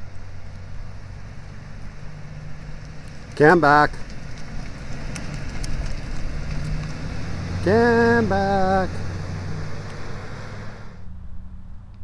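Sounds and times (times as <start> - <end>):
car engine passing slowly: 0.0 - 12.0.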